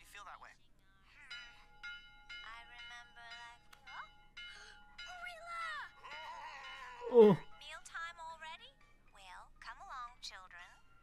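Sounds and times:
music with chime-like tones: 1.2s - 7.8s
rising cry: 6.2s - 7.4s.

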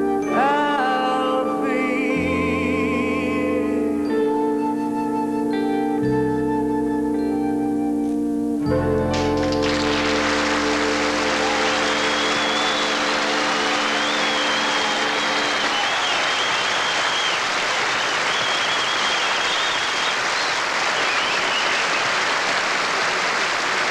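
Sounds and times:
organ chord: 0.0s - 17.4s
audience applauding: 9.1s - 23.9s
high wavering whistle: 10.7s - 22.0s.

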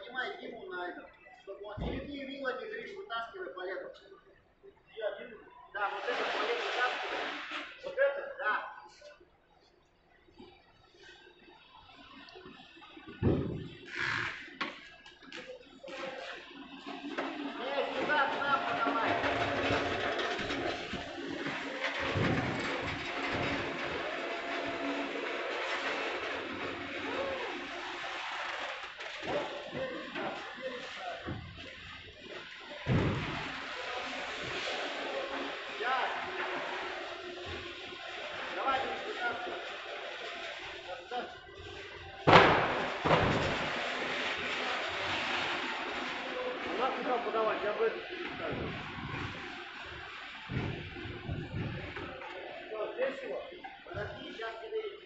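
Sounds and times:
thump: 13.2s - 13.7s, 32.9s - 33.4s, 50.5s - 51.8s
indistinct voices: 17.4s - 28.6s
loud sharp bang: 42.3s - 43.6s.

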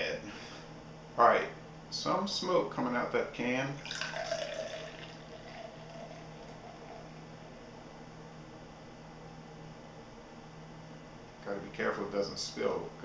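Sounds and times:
beer pouring into glass: 3.8s - 7.2s.

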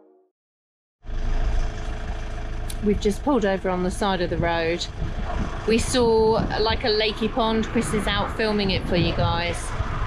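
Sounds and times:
van engine idling: 1.0s - 7.6s.

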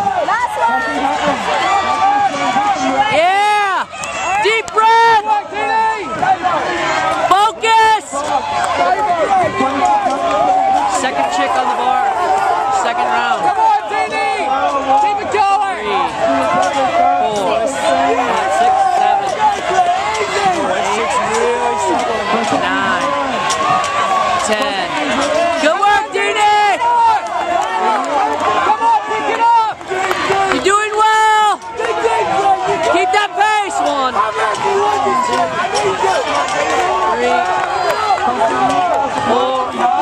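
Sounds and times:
spectators shouting and cheering: 0.0s - 40.0s.

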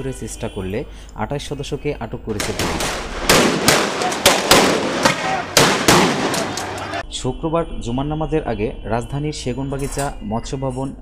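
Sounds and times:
shotgun gunshots echoing: 2.3s - 7.0s.

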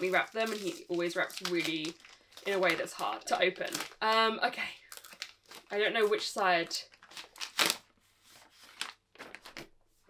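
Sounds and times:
paper wrapping rustling: 0.0s - 4.3s, 4.9s - 10.0s.

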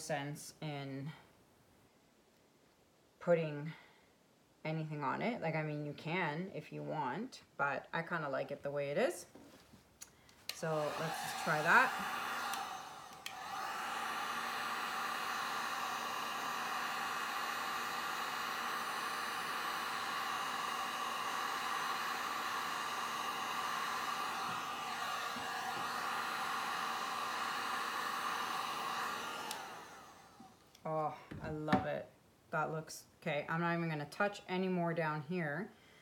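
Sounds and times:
heat gun whirring: 10.4s - 30.7s.

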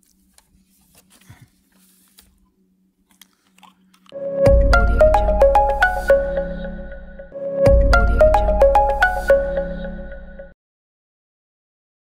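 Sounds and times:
plastic bottle crinkling: 0.0s - 4.2s.

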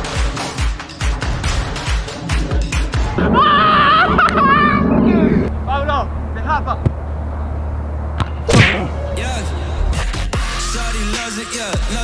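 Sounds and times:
football being kicked: 6.8s - 7.0s, 8.2s - 8.9s.

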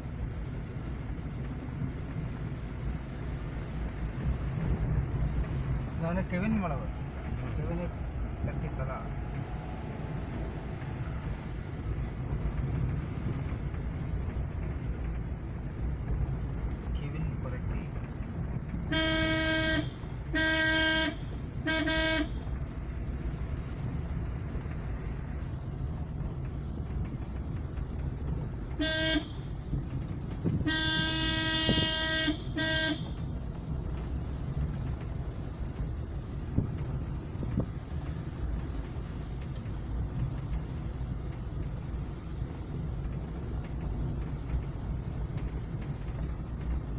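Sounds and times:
car engine and tyres rumbling: 0.0s - 46.9s
car horn honking: 18.9s - 22.4s, 28.8s - 29.4s, 30.6s - 33.2s.

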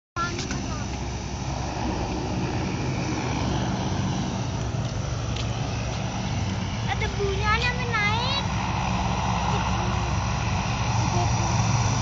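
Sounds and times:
low engine drone: 0.2s - 12.0s
rushing noise: 0.6s - 12.0s.

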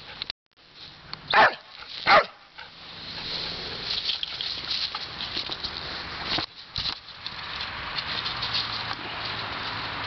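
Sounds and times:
dog barking: 1.3s - 2.5s.

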